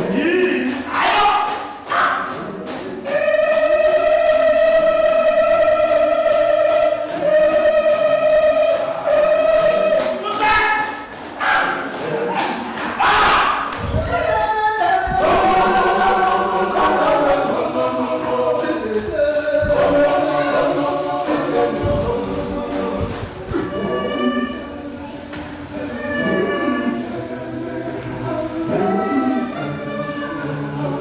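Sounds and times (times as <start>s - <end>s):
voices singing: 0.0s - 31.0s.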